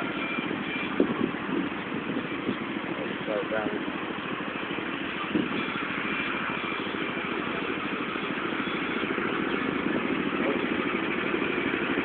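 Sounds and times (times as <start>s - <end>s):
go-kart engines running: 0.0s - 12.0s.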